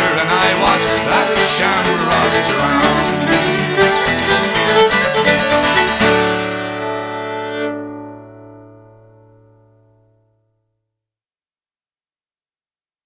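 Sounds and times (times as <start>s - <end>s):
fiddle: 0.0s - 8.7s
acoustic guitar: 0.0s - 10.3s.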